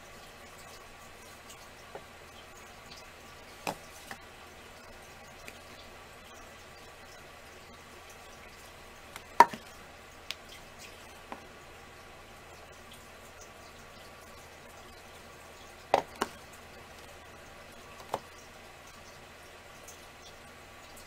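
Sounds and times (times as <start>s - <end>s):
faint room hum: 0.0s - 21.0s.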